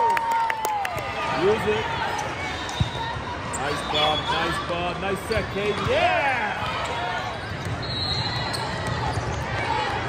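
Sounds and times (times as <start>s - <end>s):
crowd chatter in large hall: 0.1s - 10.0s
shoes squeaking on court floor: 2.0s - 6.0s, 6.8s - 9.8s.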